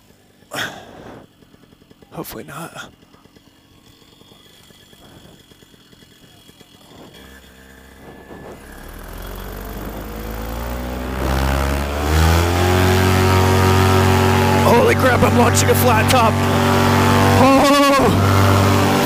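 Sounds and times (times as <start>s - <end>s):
paramotor engine revving up: 0.0s - 19.0s.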